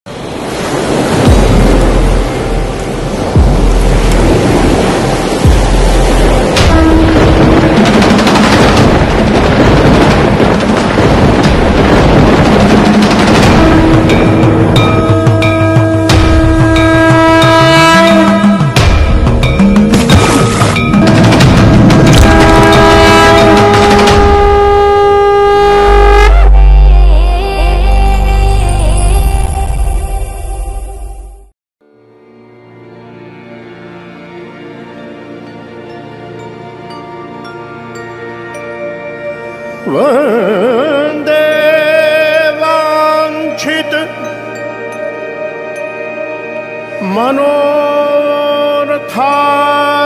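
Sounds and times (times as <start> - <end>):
surging surf: 0.1 - 24.9
wind: 0.1 - 31.2, 34.0 - 50.0
deep booms: 1.2 - 15.1, 18.6 - 24.8
music: 1.2 - 50.0
conch shell blown: 6.6 - 7.7, 15.1 - 18.8, 22.2 - 27.4.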